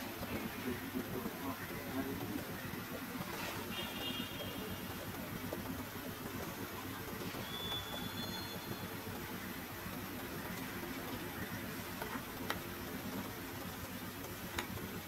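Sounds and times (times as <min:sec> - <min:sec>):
low outdoor rumble: 0:00.0 - 0:15.0
thin high whistle: 0:07.4 - 0:08.9.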